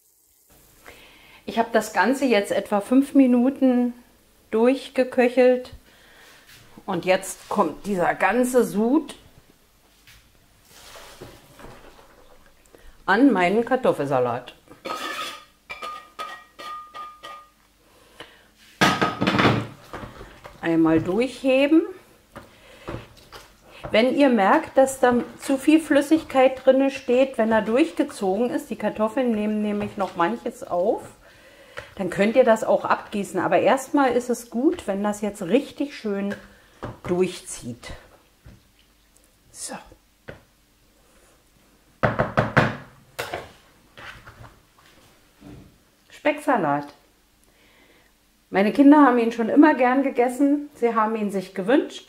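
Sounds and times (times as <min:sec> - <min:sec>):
pan clatter: 0:14.8 - 0:17.5.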